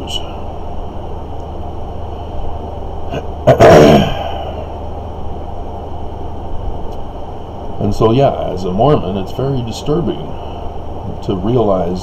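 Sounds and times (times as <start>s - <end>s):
steady low hum: 0.0s - 12.0s
man coughing: 3.1s - 4.7s.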